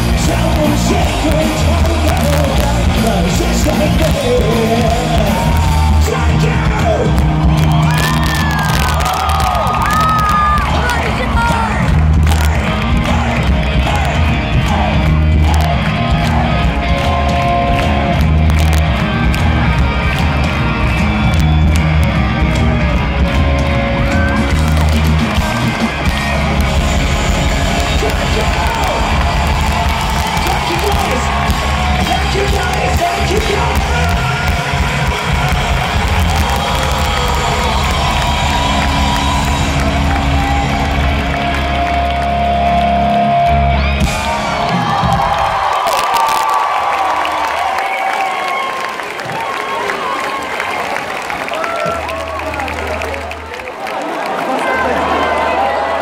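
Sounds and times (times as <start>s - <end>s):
live rock band playing loudly: 0.0s - 45.8s
crowd cheering and shouting: 0.0s - 56.0s.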